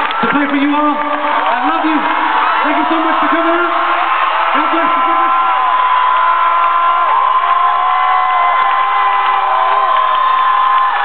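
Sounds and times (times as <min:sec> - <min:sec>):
audience cheering and screaming: 0:00.0 - 0:11.0.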